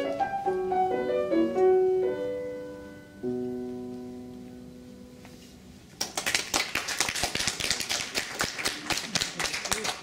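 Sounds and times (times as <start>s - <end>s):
solo piano: 0.0s - 5.3s
audience applause: 6.0s - 10.0s.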